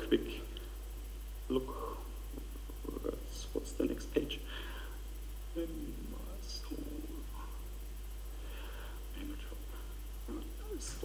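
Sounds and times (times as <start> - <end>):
people talking: 0.0 - 0.5, 1.5 - 2.0, 2.8 - 4.5, 5.6 - 7.5, 9.2 - 9.6, 10.3 - 11.0
steady low hum: 0.0 - 11.0.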